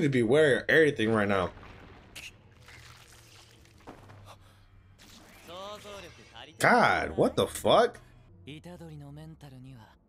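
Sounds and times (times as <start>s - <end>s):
quiet anime soundtrack: 0.0s - 10.0s.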